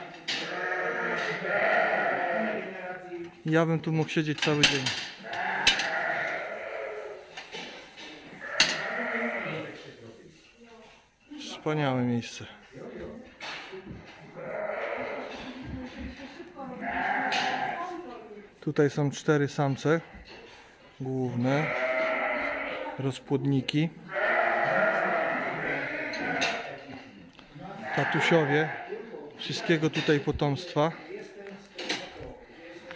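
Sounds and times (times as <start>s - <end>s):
sheep bleating: 0.4s - 2.8s, 5.2s - 7.2s, 8.4s - 9.8s, 14.3s - 15.5s, 16.7s - 17.9s, 21.4s - 23.0s, 24.0s - 26.7s, 27.8s - 29.0s.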